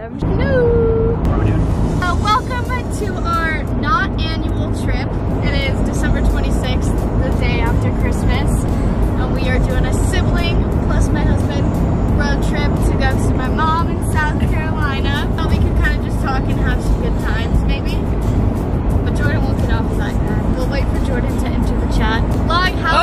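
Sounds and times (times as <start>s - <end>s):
voices: 0.0s - 18.1s, 19.1s - 23.0s
car cabin road rumble: 0.0s - 23.0s
music: 1.2s - 23.0s.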